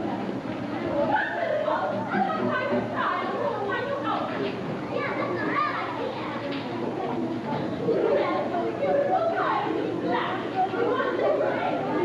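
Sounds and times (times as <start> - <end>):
children speaking on stage: 0.0 - 12.0.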